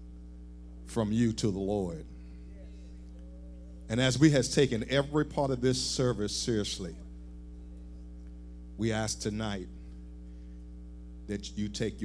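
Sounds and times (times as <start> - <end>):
electrical mains hum: 0.0 - 12.0
person speaking: 0.9 - 7.1.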